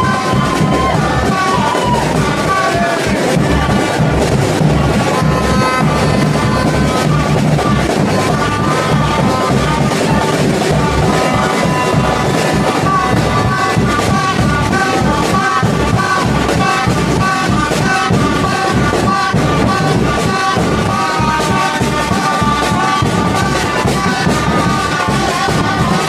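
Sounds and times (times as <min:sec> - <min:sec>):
bass drum: 0:00.0 - 0:26.0
drum band playing dance rhythm: 0:00.0 - 0:26.0
pitched melody: 0:00.0 - 0:26.0.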